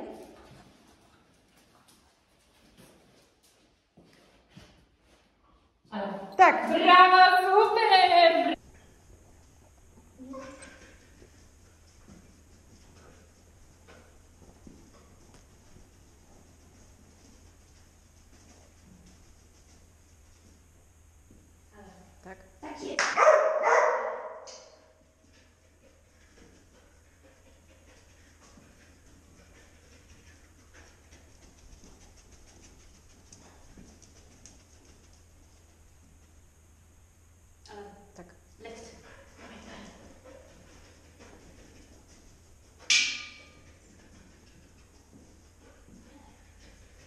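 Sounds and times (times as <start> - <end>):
dog barking with echo: 23.1 - 24.5.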